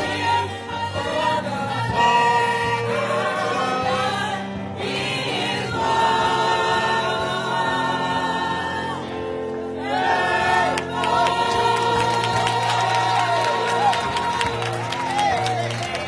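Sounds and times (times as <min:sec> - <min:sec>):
choir singing gospel: 0:00.0 - 0:16.0.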